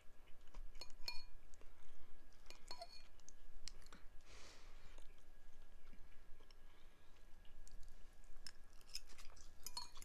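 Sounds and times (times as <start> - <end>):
metal fork clinking on ceramic bowl: 0.8 - 1.4, 2.5 - 3.1, 8.9 - 10.0.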